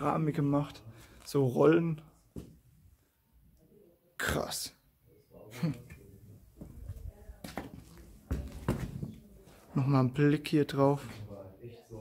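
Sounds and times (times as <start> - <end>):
footsteps on gritty floor: 6.6 - 9.6.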